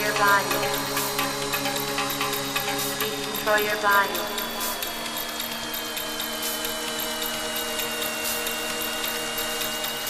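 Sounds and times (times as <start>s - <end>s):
fast ticking hi-hats: 0.0s - 10.0s
sustained synth chords: 0.0s - 10.0s.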